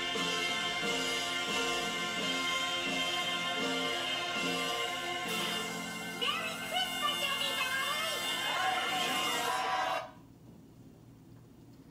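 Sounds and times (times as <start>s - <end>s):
song with singing from tv: 0.0s - 10.2s.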